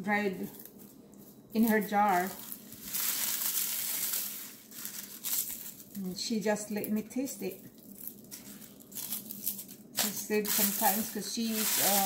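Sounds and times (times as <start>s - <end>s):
dried leaves crumbled by hand: 0.0s - 12.0s.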